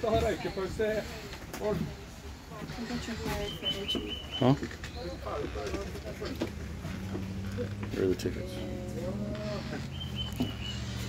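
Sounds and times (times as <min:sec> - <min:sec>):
screen door creaking: 0:02.5 - 0:11.0.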